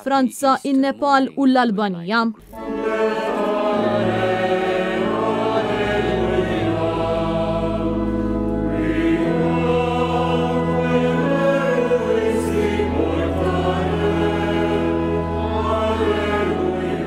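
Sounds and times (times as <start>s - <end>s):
low organ notes: 2.4s - 17.0s
church choir singing: 2.5s - 17.0s.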